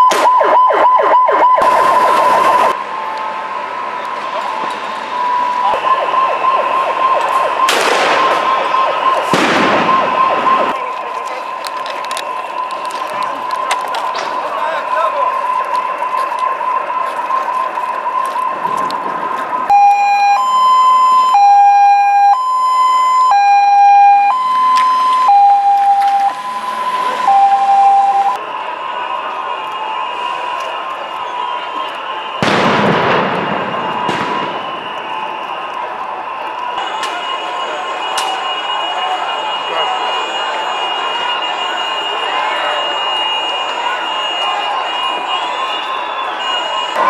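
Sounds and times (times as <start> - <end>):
steady high siren tone: 0.0 - 47.0
two-tone hi-lo siren: 0.0 - 47.0
loud rush of noise: 1.3 - 19.8.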